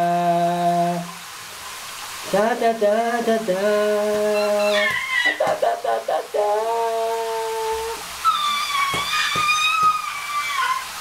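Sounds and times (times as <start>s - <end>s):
soft hiss: 0.0s - 10.0s
person singing a long note: 5.6s - 8.0s.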